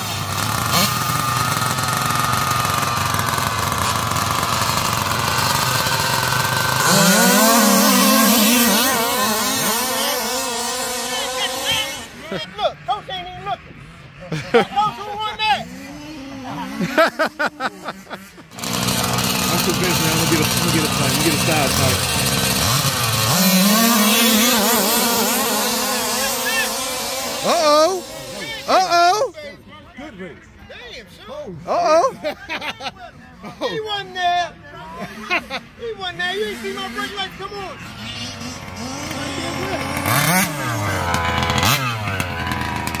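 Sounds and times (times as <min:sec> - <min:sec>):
model car engines revving: 0:00.0 - 0:29.4, 0:33.9 - 0:43.0.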